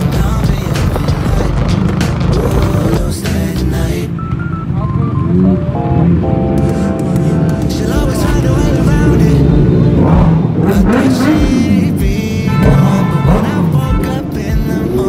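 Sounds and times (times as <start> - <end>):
song with sung melody: 0.0 - 4.8, 6.6 - 15.0.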